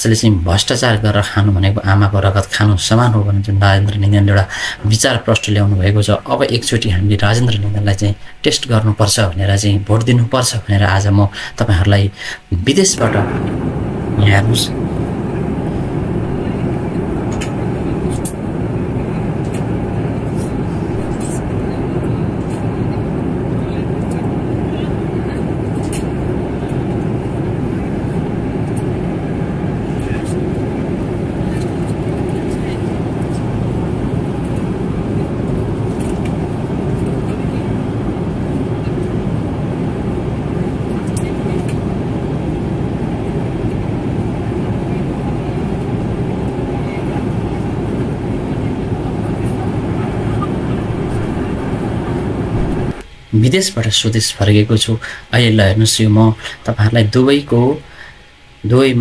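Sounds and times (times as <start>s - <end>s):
cabin ventilation air rush: 0.0s - 58.8s
passengers' voices: 11.2s - 53.0s.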